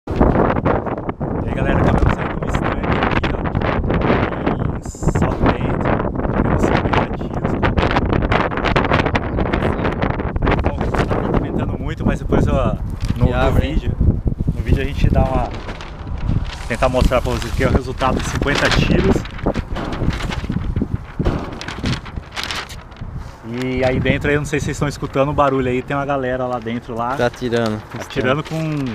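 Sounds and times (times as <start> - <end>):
wind buffeting microphone: 0.1 - 28.9
paper crackling and rustling: 12.8 - 13.8, 14.4 - 28.9.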